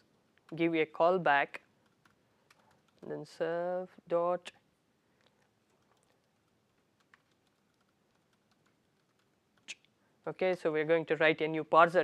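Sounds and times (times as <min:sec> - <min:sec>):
laptop keyboard typing: 0:01.8 - 0:03.0, 0:05.2 - 0:09.7.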